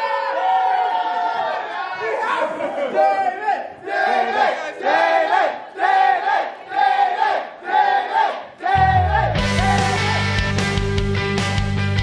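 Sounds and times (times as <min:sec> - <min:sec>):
crowd chanting in unison: 0:02.9 - 0:09.5
music: 0:08.8 - 0:12.0.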